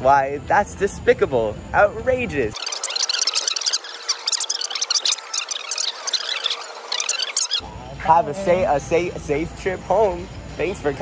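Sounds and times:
sped-up squeaky voice chatter: 0:02.5 - 0:07.6
man speaking: 0:07.9 - 0:11.0.

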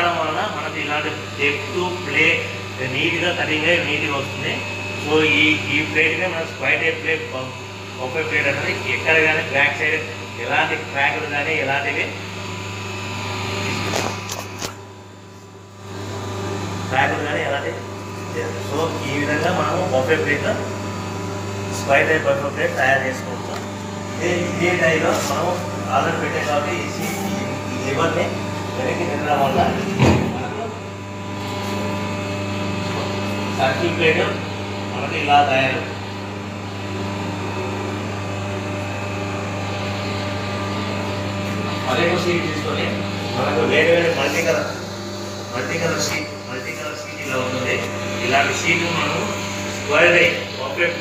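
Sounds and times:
machine humming: 0:00.0 - 0:51.0
rising mechanical noise: 0:21.6 - 0:36.0.

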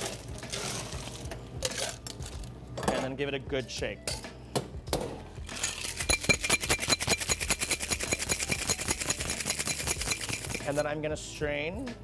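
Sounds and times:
ice rattling in cocktail shaker: 0:05.6 - 0:10.8.

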